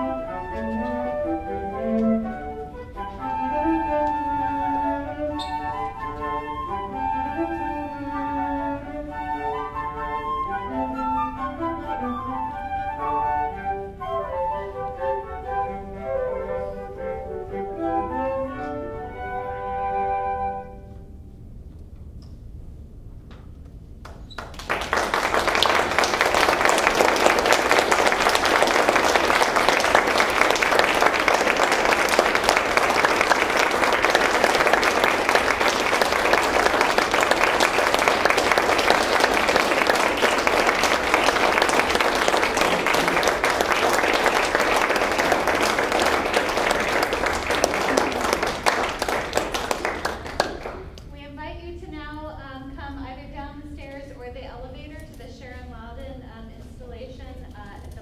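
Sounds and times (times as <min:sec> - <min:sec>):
audience applauding: 0:24.1 - 0:51.0.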